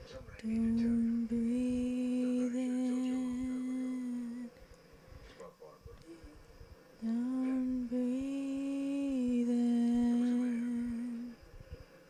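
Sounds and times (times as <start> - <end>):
woman humming a held note: 7.0 - 11.4.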